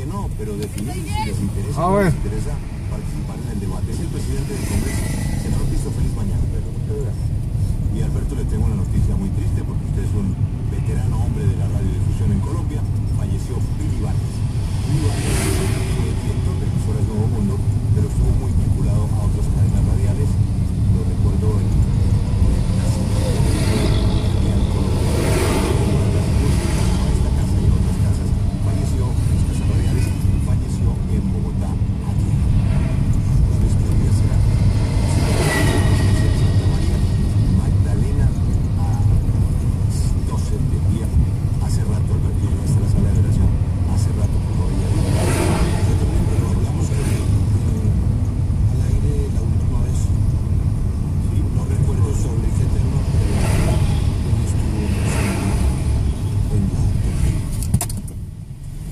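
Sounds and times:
car engine and road rumble: 0.0 - 58.9.

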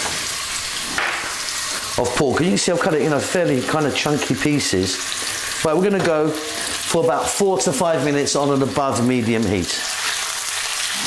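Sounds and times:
meat sizzling in oil: 0.0 - 11.0.

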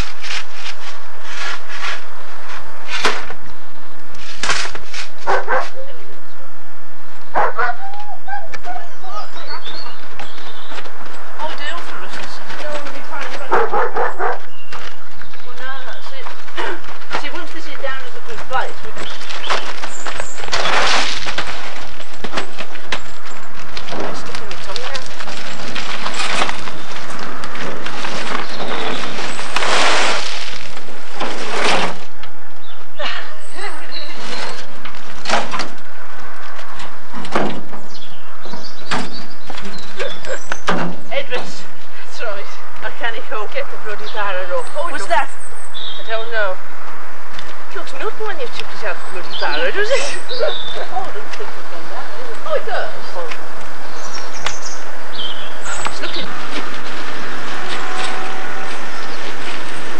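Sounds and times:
metal wheelbarrow scraping on gravel: 0.0 - 3.4, 10.2 - 32.3, 33.9 - 35.8, 55.1 - 59.9
dog barking: 5.2 - 5.8, 7.3 - 8.9, 13.5 - 14.5
indistinct voices: 7.3 - 9.9, 22.1 - 29.3, 46.0 - 59.9
wheelbarrow clanking: 9.4 - 32.2.

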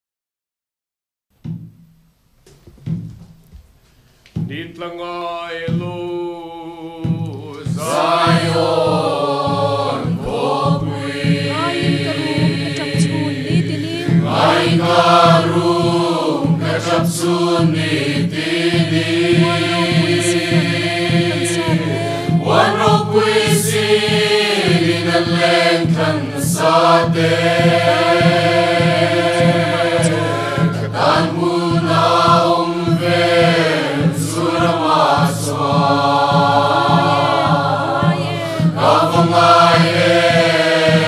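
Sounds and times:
hand drum steady beat: 4.4 - 41.0
group singing a slow hymn: 4.8 - 41.0.

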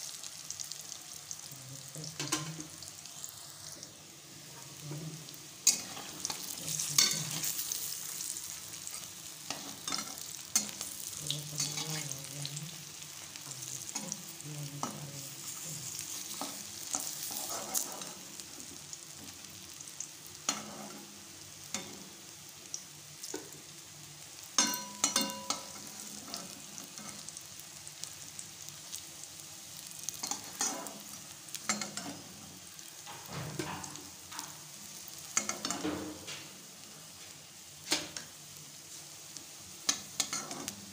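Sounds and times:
food sizzling in deep-fry oil: 0.0 - 40.9
metal spatula scraping a pan: 4.4 - 12.2, 14.8 - 18.4, 20.5 - 21.1, 24.7 - 27.3, 30.1 - 34.6, 40.0 - 40.8.

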